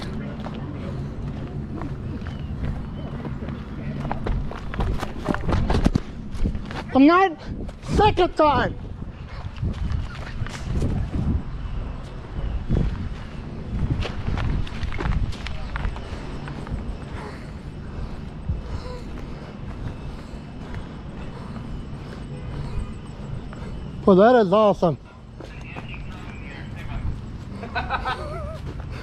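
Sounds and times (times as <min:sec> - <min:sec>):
footsteps on dry grass: 0:12.6 - 0:24.1.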